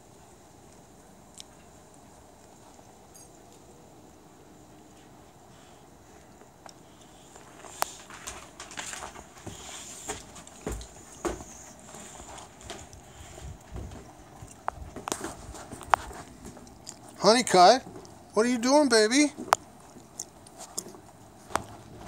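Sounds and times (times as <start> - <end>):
footsteps crunching through snow: 7.3 - 17.2.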